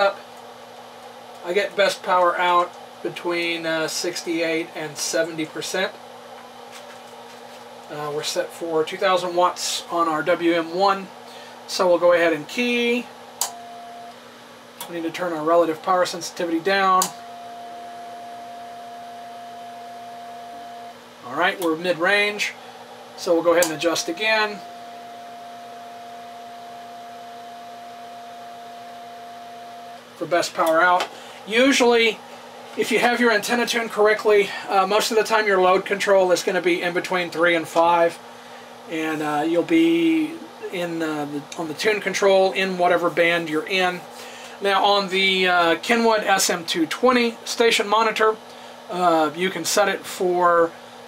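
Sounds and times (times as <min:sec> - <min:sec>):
low electrical hum: 0:00.0 - 0:51.0
steady morse sidetone: 0:11.7 - 0:14.2, 0:15.2 - 0:22.6, 0:23.2 - 0:32.2.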